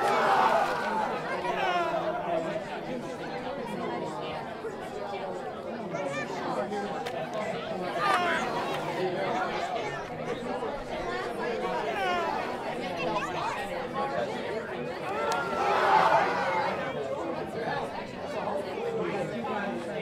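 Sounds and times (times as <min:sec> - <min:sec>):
children chattering: 0:00.0 - 0:20.0.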